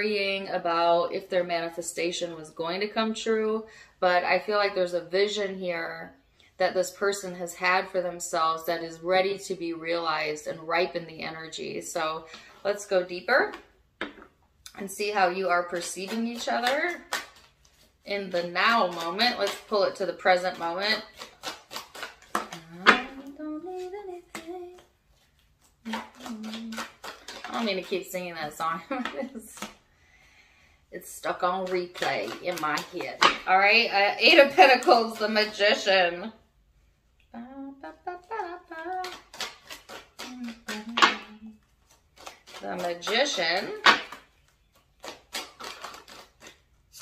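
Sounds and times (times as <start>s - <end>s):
cards being shuffled: 15.0s - 29.8s, 31.2s - 35.8s, 38.7s - 47.0s
woman singing: 22.4s - 24.9s, 25.9s - 26.9s, 37.4s - 39.3s, 40.2s - 41.6s
cards dropping onto table: 40.6s - 41.3s, 43.8s - 44.3s.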